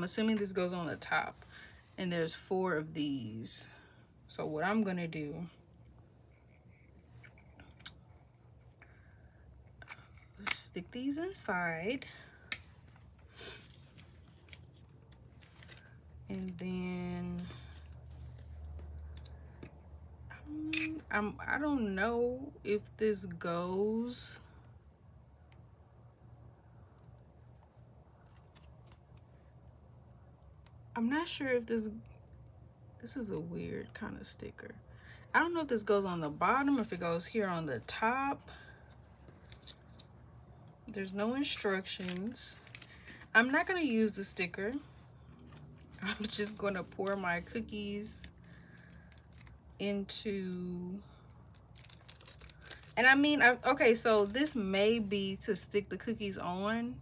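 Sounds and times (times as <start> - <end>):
faint low hum: 0.0 - 57.0
paper backing crackling: 13.1 - 19.3, 35.7 - 40.1, 40.9 - 49.8, 51.1 - 55.1
plastic bag crinkling: 41.5 - 43.8, 51.5 - 54.6.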